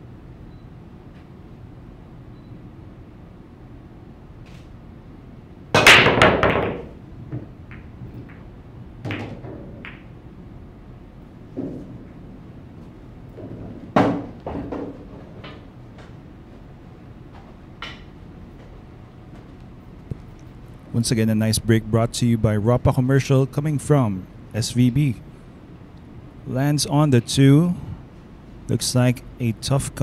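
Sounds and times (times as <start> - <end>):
pool balls clacking: 5.8 - 10.2, 11.5 - 12.3, 13.3 - 16.2.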